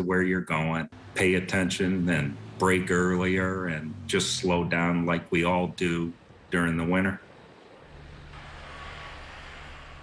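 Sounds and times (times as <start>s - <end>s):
low engine hum: 1.0s - 5.1s, 7.8s - 10.0s.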